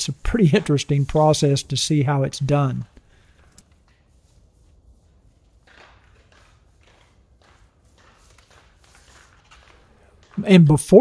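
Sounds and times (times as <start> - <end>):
paint roller swishing through epoxy: 0.0 - 11.0.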